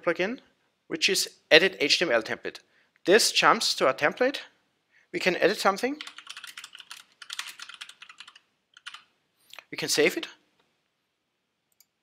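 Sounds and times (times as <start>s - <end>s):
computer keyboard key clicks: 6.0s - 9.0s.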